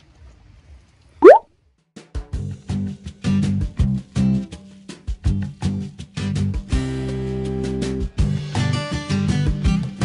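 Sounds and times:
rising bloop sound effect: 0:01.2 - 0:01.4.

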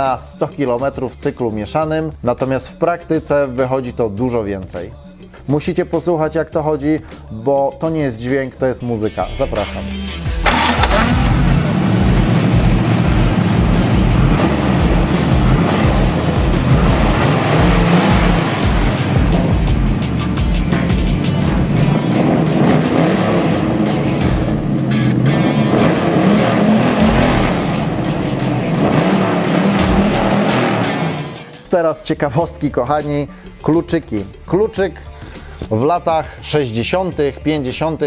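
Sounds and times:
car engine starting and running: 0:09.9 - 0:31.7.

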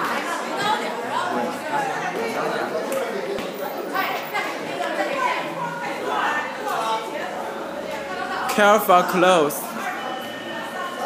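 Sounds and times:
indistinct chatter of people: 0:00.0 - 0:11.0.

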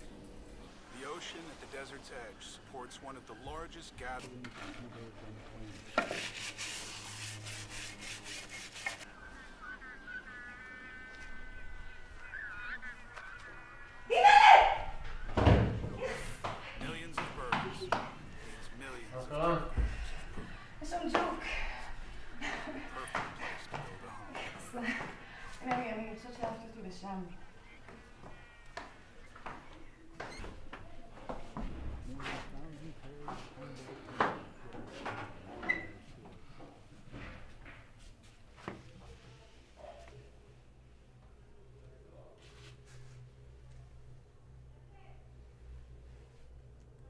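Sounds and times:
loud vocal cry: 0:14.0 - 0:15.0.

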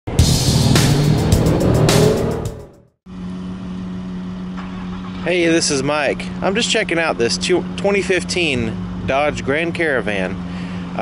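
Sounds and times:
car engine revving: 0:00.1 - 0:03.0
music: 0:00.1 - 0:03.0.

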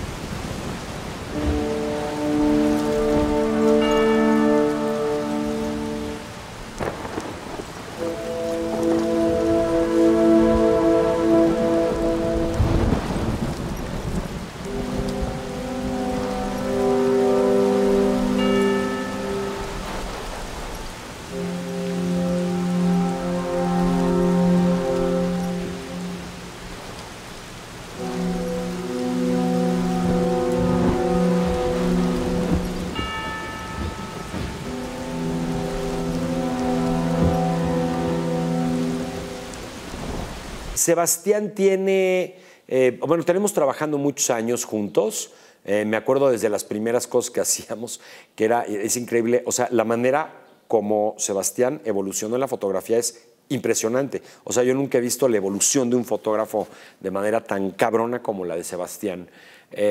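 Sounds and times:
rain falling on a boat deck: 0:00.0 - 0:59.9
slow musical chords: 0:00.9 - 0:40.8
low rumble of thunder: 0:06.7 - 0:17.2, 0:27.9 - 0:40.8.

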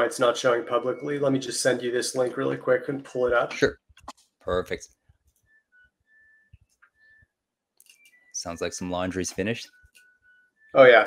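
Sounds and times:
washing machine electronic beeps: 0:00.0 - 0:02.6, 0:05.4 - 0:11.0.

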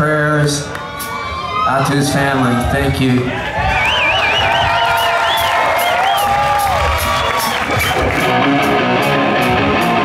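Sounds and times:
rock band playing: 0:04.5 - 0:10.0
electric guitar with vibrato: 0:07.7 - 0:10.0.

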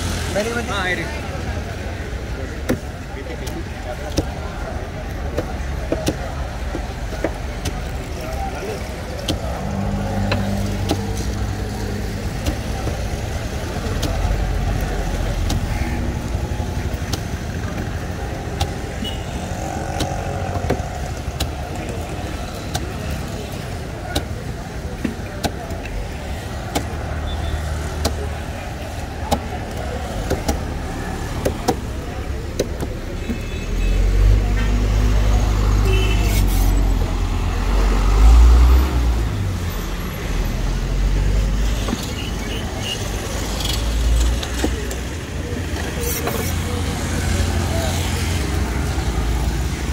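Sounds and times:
road traffic: 0:00.0 - 0:49.9.

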